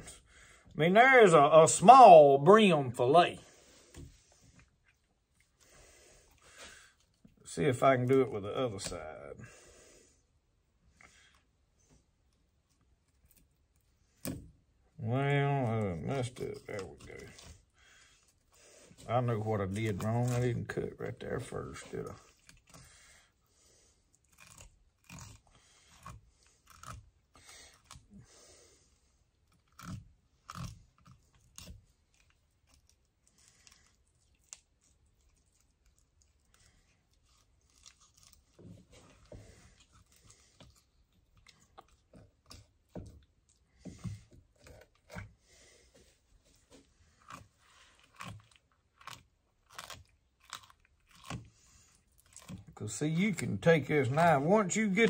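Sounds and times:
knife cutting and scraping fish: 11.1 - 14.7, 15.6 - 55.0.

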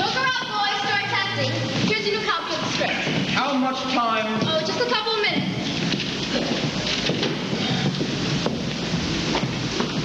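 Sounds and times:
steady noisy rush: 0.0 - 10.0
footsteps on stage: 1.7 - 10.0.

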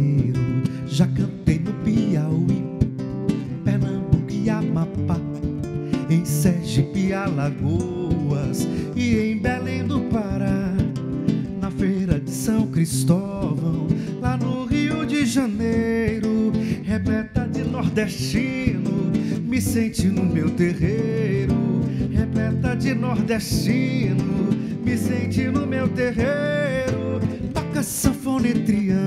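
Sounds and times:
acoustic guitars fingerpicking: 0.0 - 29.0.

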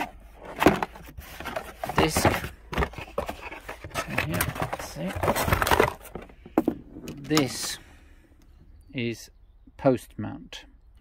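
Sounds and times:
cardboard scraping and rustling: 0.0 - 7.7.

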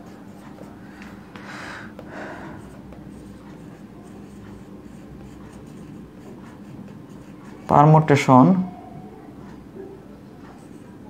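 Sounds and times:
pen scratching while writing: 2.0 - 7.7.

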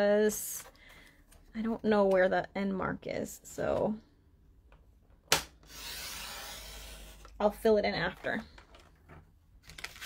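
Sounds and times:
trimmer blade scraping cardstock: 5.6 - 7.3.

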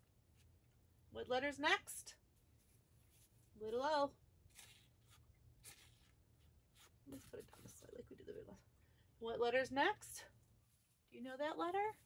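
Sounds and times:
soft paper rustles: 2.2 - 8.6, 10.2 - 12.0.

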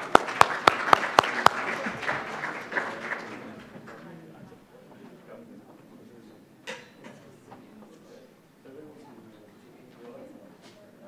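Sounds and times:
loud sharp claps: 0.0 - 4.0
audience applause: 0.0 - 4.1.

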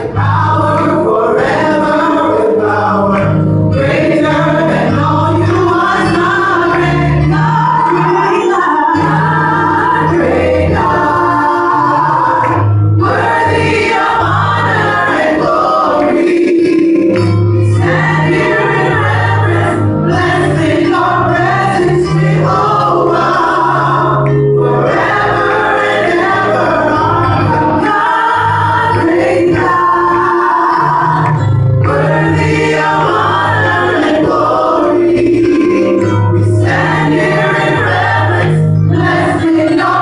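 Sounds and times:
group singing gospel: 0.0 - 40.0.

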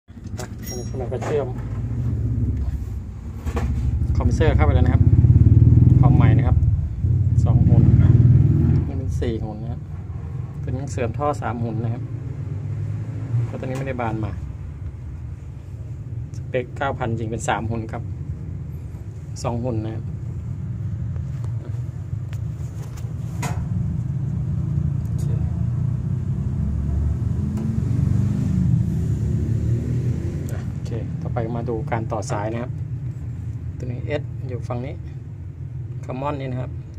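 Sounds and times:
low machine rumble: 0.5 - 8.2.

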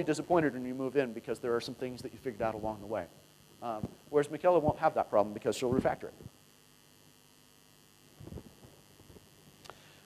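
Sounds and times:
faint electrical hum: 0.0 - 10.0
microphone hiss: 0.0 - 10.0.

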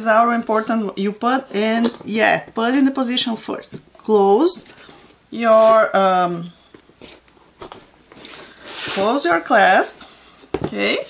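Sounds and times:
hands rubbing cardboard box: 8.2 - 9.3.

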